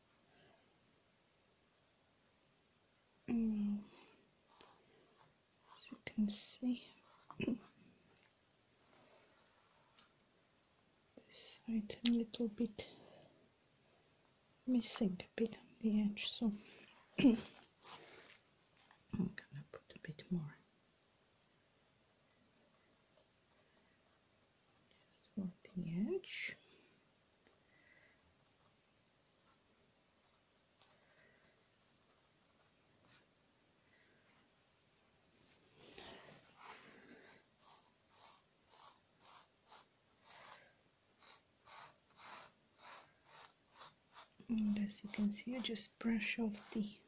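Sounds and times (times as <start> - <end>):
person whispering: 3.2 - 4.8, 5.7 - 7.8, 11.2 - 13.1, 14.7 - 17.6, 19.1 - 20.7, 24.9 - 26.8, 44.4 - 47.0
soft brush swishing: 3.7 - 10.3, 28.4 - 47.0.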